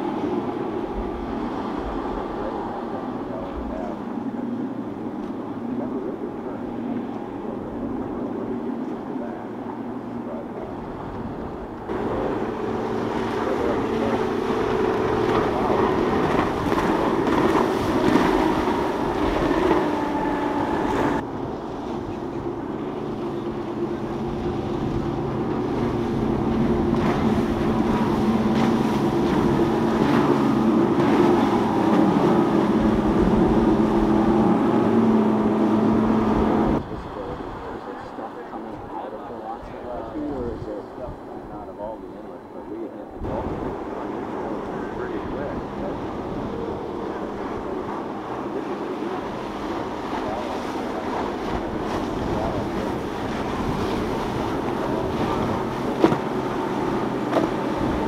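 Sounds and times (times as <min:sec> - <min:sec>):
outboard engines drone: 0:00.0 - 0:58.0.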